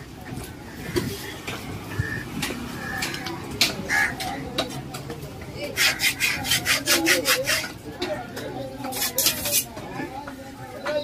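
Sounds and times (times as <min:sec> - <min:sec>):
knife scraping wooden chopping block: 0:05.7 - 0:07.8, 0:08.8 - 0:09.8
knife sawing through fish: 0:05.8 - 0:07.7.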